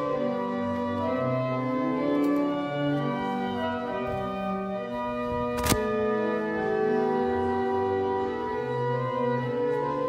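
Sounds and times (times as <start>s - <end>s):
church organ playing sustained chords: 0.0s - 10.0s.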